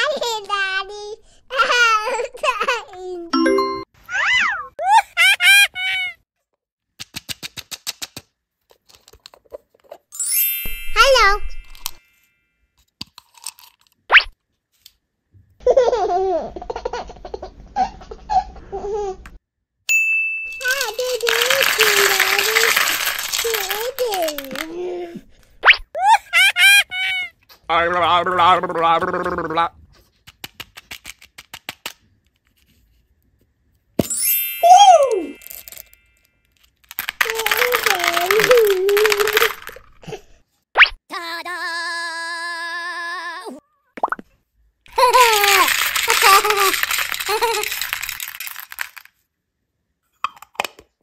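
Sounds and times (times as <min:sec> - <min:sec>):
sharp plastic clicks: 0:07.0 - 0:09.4, 0:30.2 - 0:32.0.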